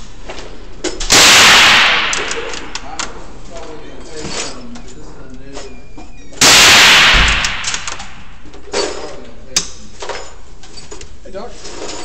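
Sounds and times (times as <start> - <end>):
rifle shot with echo: 1.1 - 2.8, 6.4 - 8.4.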